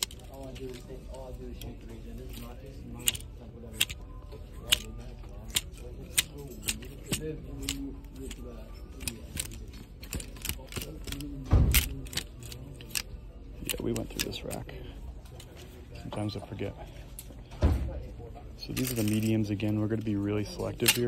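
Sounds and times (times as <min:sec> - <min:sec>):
plastic hangers clicking on metal rail: 0:04.6 - 0:14.6.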